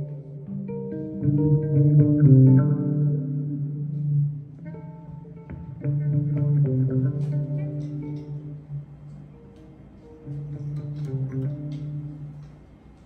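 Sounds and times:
electric bass notes: 0.0s - 12.6s.

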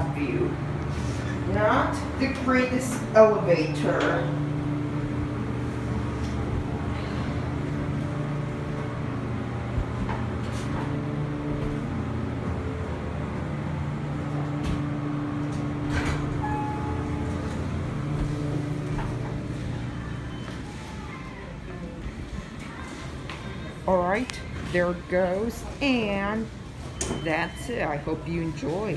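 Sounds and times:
elevator hum and rumble: 0.0s - 28.9s.

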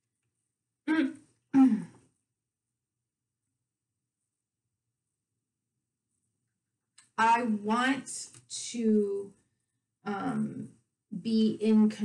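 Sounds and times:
woman clearing her throat: 0.9s - 2.0s.

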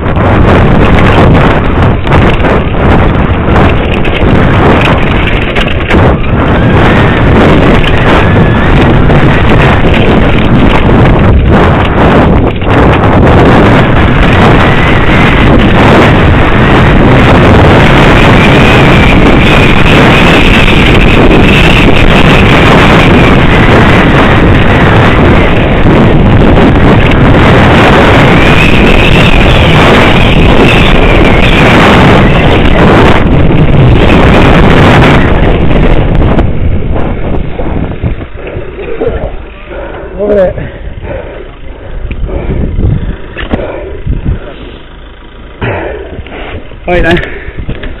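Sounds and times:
mountain bike rattling over gravel: 0.0s - 45.8s, 46.6s - 48.0s
wind buffeting microphone: 0.0s - 48.0s.

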